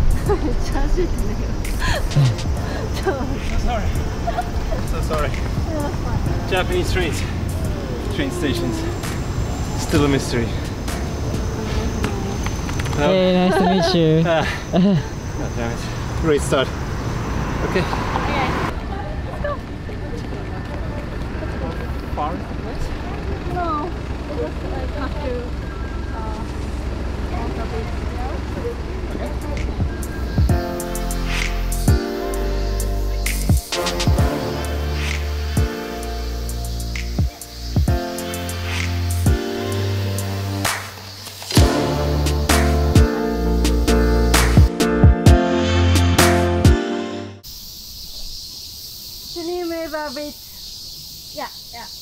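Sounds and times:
high-pitched insect drone: 0:00.0 - 0:18.5, 0:27.3 - 0:44.6, 0:47.4 - 0:52.0
street traffic rumble: 0:00.0 - 0:46.7, 0:47.4 - 0:52.0
people talking: 0:00.3 - 0:02.4, 0:03.0 - 0:09.1, 0:12.0 - 0:16.7, 0:17.6 - 0:29.9, 0:49.4 - 0:50.4.

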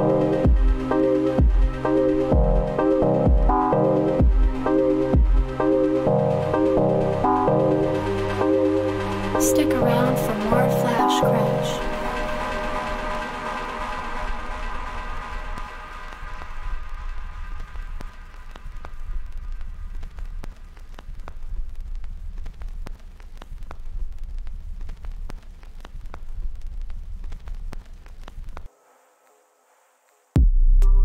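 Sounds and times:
steady low drone: 0:00.0 - 0:17.9
crackling clicks: 0:14.8 - 0:29.4.

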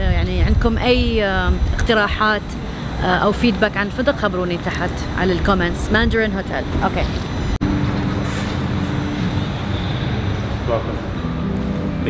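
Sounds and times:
woman speaking: 0:00.0 - 0:07.2
low traffic rumble: 0:00.0 - 0:12.0.

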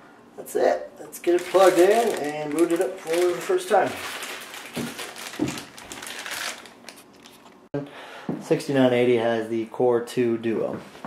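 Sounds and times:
plastic bag crinkling: 0:01.2 - 0:07.6.

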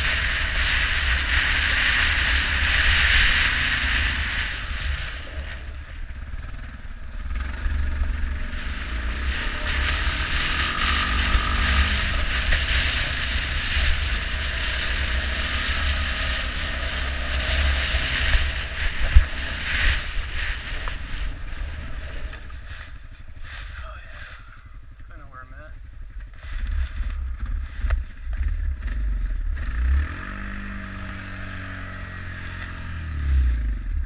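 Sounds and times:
atv engine running: 0:00.0 - 0:34.0
wind buffeting microphone: 0:08.6 - 0:25.1.

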